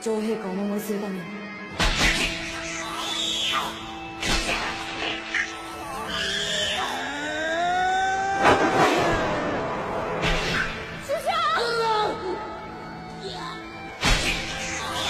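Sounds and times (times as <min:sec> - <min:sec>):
dramatic background score: 0:00.0 - 0:15.0.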